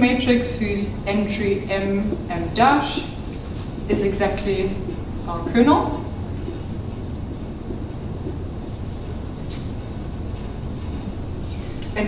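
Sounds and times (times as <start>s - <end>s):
low background rumble: 0.0s - 12.0s
marker writing on whiteboard: 1.4s - 12.0s.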